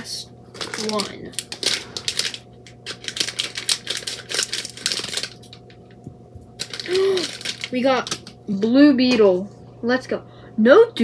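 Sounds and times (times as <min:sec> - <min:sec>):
plastic packet crinkling and tearing: 0:00.5 - 0:05.8, 0:06.6 - 0:08.4.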